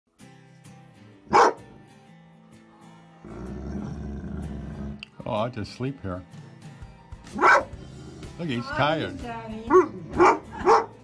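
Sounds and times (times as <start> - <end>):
music bed: 0.1 - 11.0
dog barking: 1.3 - 1.7, 7.3 - 7.8, 9.7 - 11.0.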